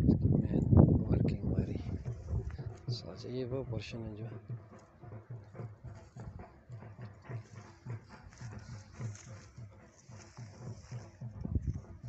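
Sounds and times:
footsteps on grass: 0:01.5 - 0:03.4, 0:04.3 - 0:12.0.

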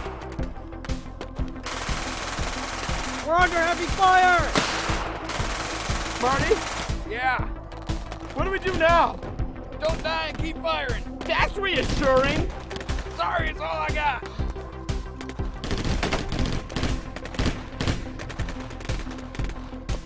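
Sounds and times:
music: 0:00.0 - 0:20.0
automatic gunfire: 0:01.6 - 0:07.0.

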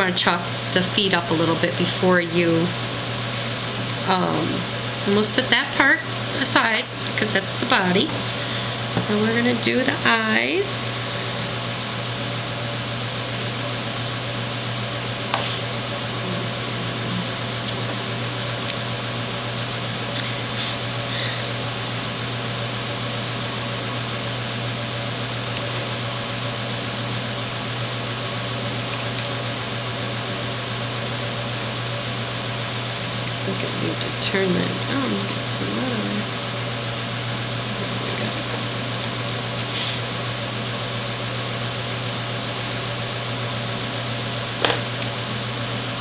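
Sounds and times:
appliance hum and hiss: 0:00.0 - 0:46.0.

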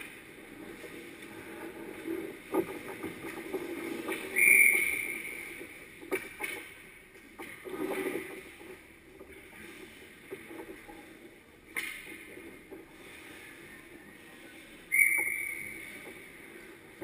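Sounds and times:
skates scraping on ice: 0:00.0 - 0:17.0.

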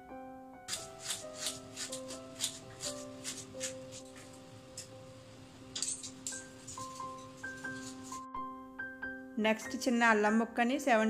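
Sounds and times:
background music with held notes: 0:00.0 - 0:11.0
knife slicing onion on countertop: 0:00.7 - 0:04.3, 0:06.6 - 0:08.2.

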